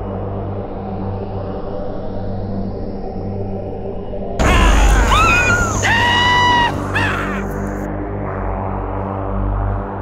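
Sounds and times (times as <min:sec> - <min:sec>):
low music drone: 0:00.0 - 0:10.0
sudden loud hit: 0:04.4 - 0:07.0
loud pitched cries: 0:04.4 - 0:07.7.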